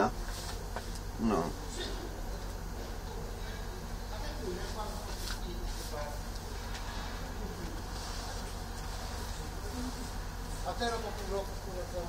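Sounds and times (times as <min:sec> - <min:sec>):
low buzzing hum: 0:00.0 - 0:12.0.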